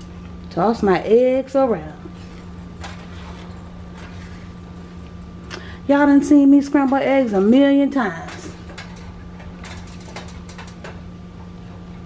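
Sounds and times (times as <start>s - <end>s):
spatula scraping frying pan: 2.2s - 4.6s.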